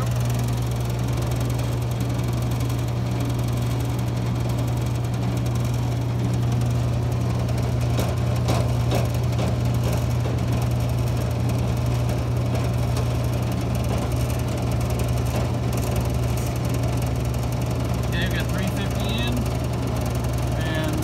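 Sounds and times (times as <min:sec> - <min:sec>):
vacuum pump humming: 0:00.0 - 0:21.0.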